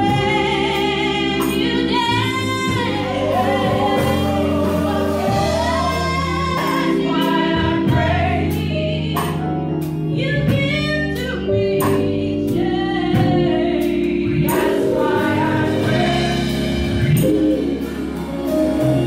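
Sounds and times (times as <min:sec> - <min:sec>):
woman singing lead: 0:00.0 - 0:09.5, 0:10.1 - 0:17.9
drum kit: 0:00.0 - 0:19.0
gospel choir singing: 0:00.0 - 0:19.0
stage keyboard: 0:00.0 - 0:19.0.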